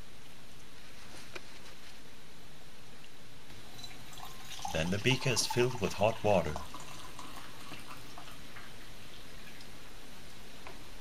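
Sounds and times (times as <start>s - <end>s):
steady low hiss: 0.0s - 11.0s
water drips and ticks: 3.0s - 10.4s.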